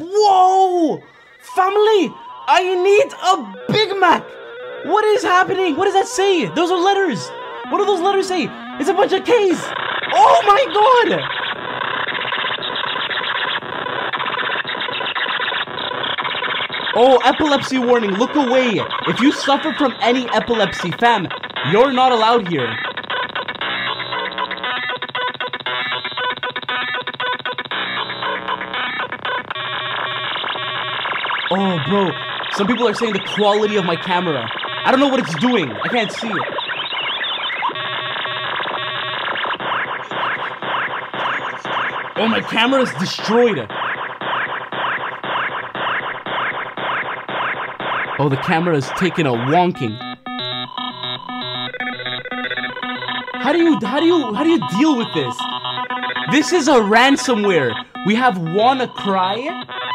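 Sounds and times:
harsh glitchy digital noise: 0.0 - 59.9.

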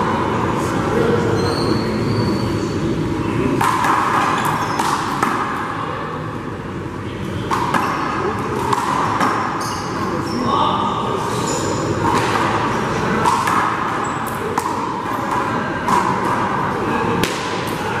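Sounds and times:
steady background noise: 0.0 - 18.0
handball smacking wall and floor: 12.0 - 16.5, 17.2 - 17.7.

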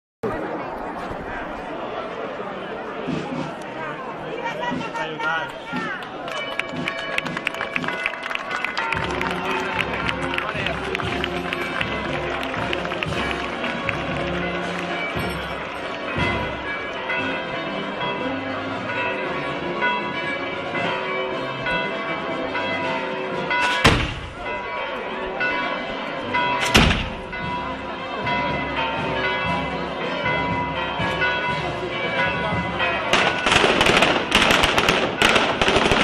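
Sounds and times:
festival crowd: 0.2 - 36.0
church bells ringing: 4.4 - 36.0
loud sharp bang: 23.6 - 24.5, 26.6 - 27.3
sharp cracks: 33.2 - 36.0.

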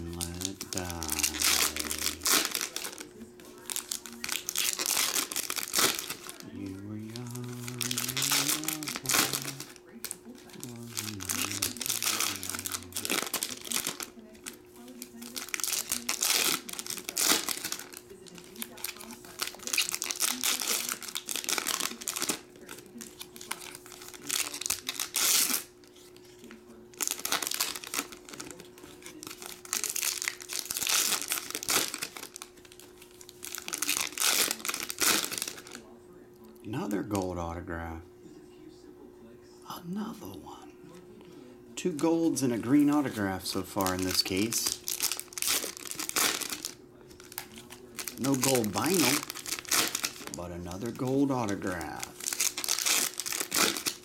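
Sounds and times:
foil wrappers crinkling and tearing: 0.0 - 36.0, 41.8 - 54.0.

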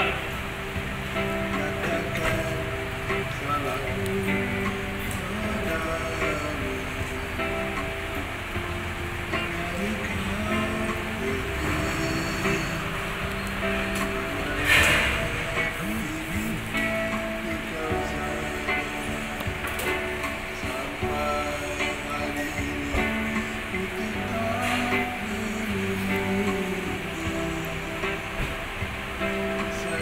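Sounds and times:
electronic keyboard: 0.0 - 30.0
man singing into a microphone: 1.1 - 30.0
burst of noise: 8.8 - 23.8.

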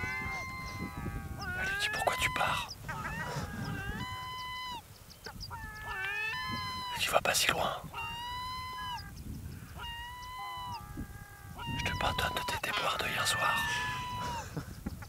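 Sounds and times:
gulls calling: 0.0 - 15.0.

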